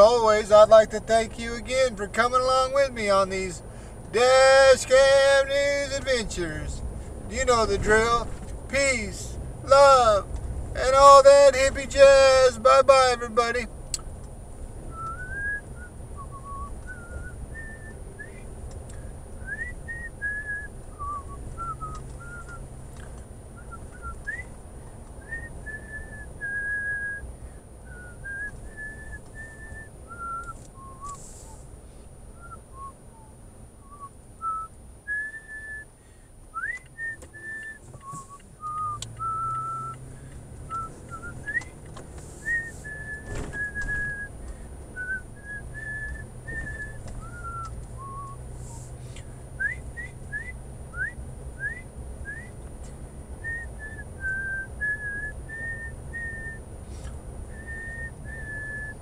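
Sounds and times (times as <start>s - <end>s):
car rumble: 0.0s - 59.0s
person whistling a tune: 14.9s - 18.4s, 19.4s - 22.6s, 25.2s - 27.2s, 27.9s - 31.6s, 32.4s - 35.9s, 36.6s - 40.1s, 40.7s - 41.8s, 42.4s - 44.4s, 45.0s - 48.5s, 49.6s - 52.6s, 53.4s - 56.6s, 57.5s - 59.0s.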